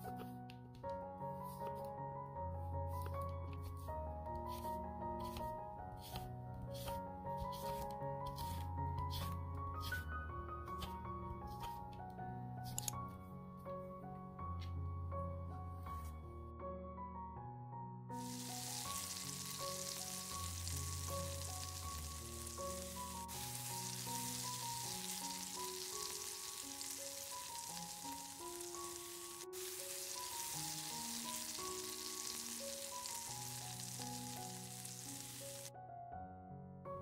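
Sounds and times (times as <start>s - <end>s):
soft background music: 0.0s - 37.0s
vegetables sizzling in a pan: 18.2s - 35.7s.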